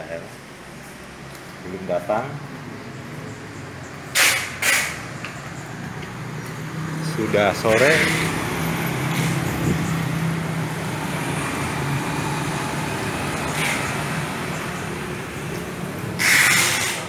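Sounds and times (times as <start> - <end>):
scooter and car engines passing: 2.6 - 17.0.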